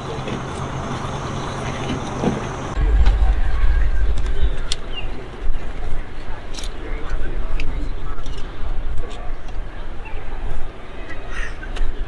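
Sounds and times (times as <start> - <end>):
bus engine idling: 0.0 - 3.4
deep engine rumble: 0.7 - 7.6.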